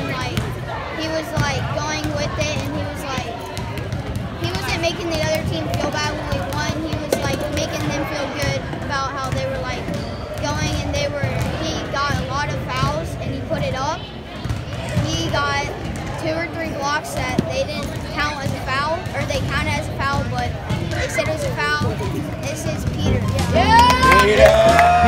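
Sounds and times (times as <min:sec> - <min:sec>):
boy talking: 0:00.0 - 0:00.4, 0:01.0 - 0:03.4, 0:04.4 - 0:14.0, 0:15.0 - 0:24.5
background voices chattering: 0:00.0 - 0:25.0.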